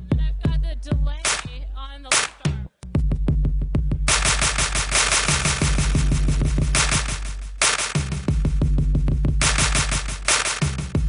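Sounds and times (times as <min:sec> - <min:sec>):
electronic dance music: 0:01.2 - 0:01.5, 0:04.1 - 0:08.6, 0:09.4 - 0:11.0
fast drum machine roll: 0:01.2 - 0:01.5, 0:04.1 - 0:11.0
steady bass note: 0:03.0 - 0:11.0.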